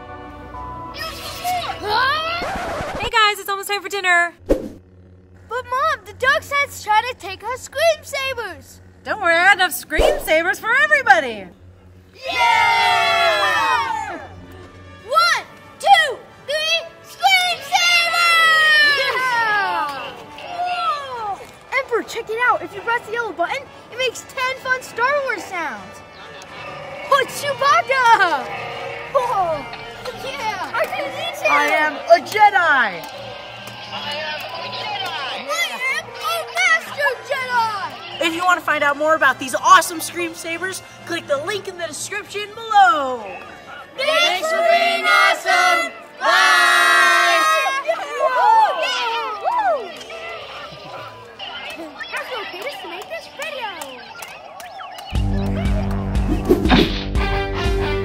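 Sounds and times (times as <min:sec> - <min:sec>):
children yelling: 0:00.9 - 0:02.8, 0:12.1 - 0:14.4, 0:15.0 - 0:39.0, 0:42.6 - 0:55.9.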